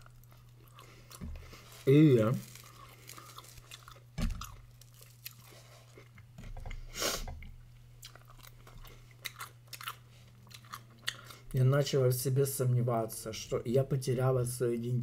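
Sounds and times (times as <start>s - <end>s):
chewing and crunching food: 0.0s - 6.8s, 7.4s - 11.6s.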